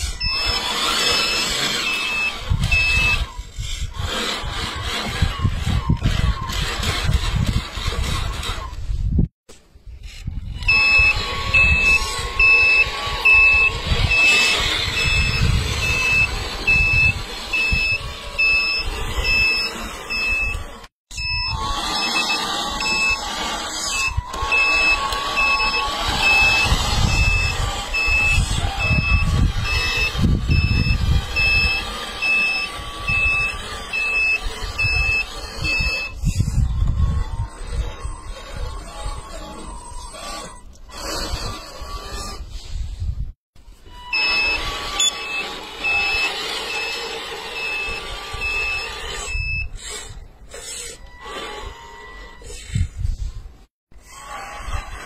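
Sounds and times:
reversing warning beep: 0.0 - 3.4, 10.5 - 36.6, 37.5 - 41.2, 43.7 - 49.9, 50.8 - 53.3
truck rumbling over rubble: 10.3 - 37.2.

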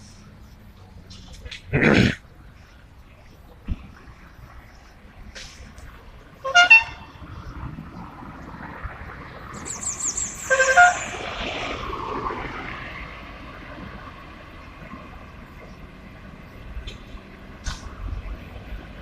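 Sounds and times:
passing traffic: 0.0 - 19.0
car horns tooting: 6.4 - 7.2, 10.3 - 11.2.

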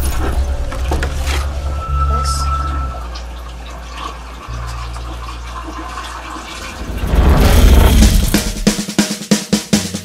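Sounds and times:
low steady drone: 0.0 - 5.2
running water: 0.0 - 8.7.

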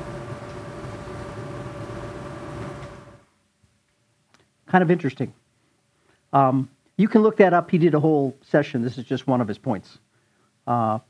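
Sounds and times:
low hum: 0.0 - 3.3.

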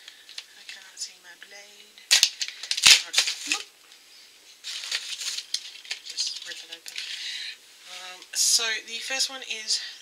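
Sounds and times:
packaging rustling and crinkling: 0.0 - 0.9, 2.1 - 3.7, 4.6 - 7.2.

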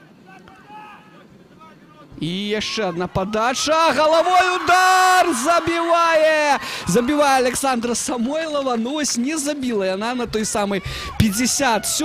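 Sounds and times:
distant voices calling out: 0.0 - 12.0.

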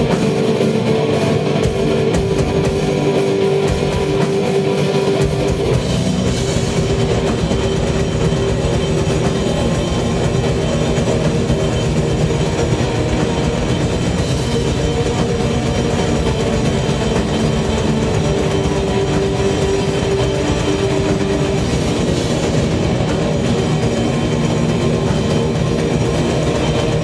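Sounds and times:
metal band playing live: 0.0 - 27.0.

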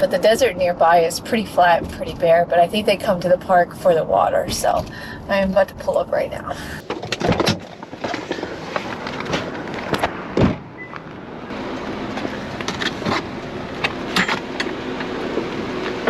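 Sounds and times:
car door opening: 6.8 - 11.2
heavy thump: 10.4 - 10.7.

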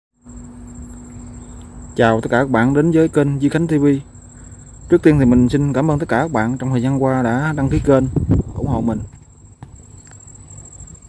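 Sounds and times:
high-pitched insect whine: 0.2 - 11.0
diesel engine idling: 0.3 - 11.0.

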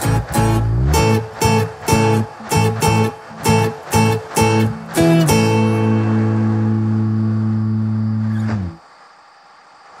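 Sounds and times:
strummed guitar chord ringing: 0.0 - 8.8.

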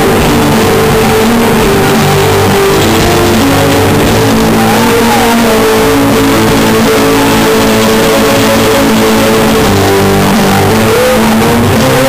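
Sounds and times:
bass guitar: 0.0 - 12.0
drums: 0.0 - 12.0
electric guitar: 0.0 - 12.0.

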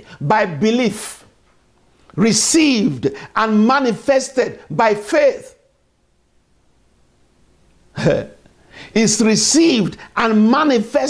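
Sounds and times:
man chuckling: 8.0 - 8.5.

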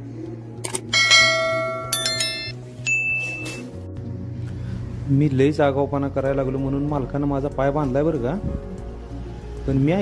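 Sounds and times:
bell-like chime ringing: 1.0 - 3.7.

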